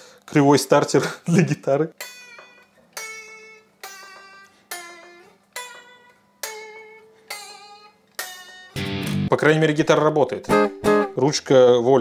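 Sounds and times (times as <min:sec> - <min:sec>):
electric guitar chords: 0:03.0 - 0:09.3, 0:10.5 - 0:11.2.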